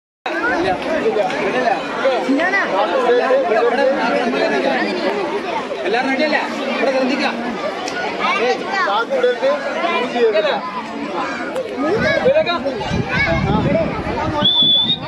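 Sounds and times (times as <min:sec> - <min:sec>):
children chattering and calling: 0:00.3 - 0:15.0.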